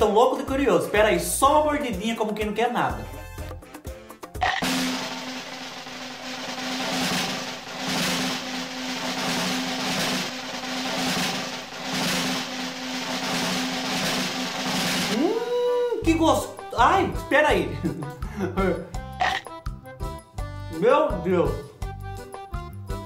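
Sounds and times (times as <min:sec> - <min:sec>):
drums: 0:00.0 - 0:23.0.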